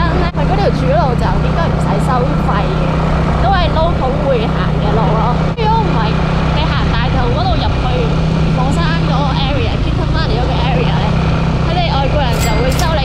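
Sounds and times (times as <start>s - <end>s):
wind and road noise: 0.0s - 13.0s
woman talking: 0.0s - 13.0s.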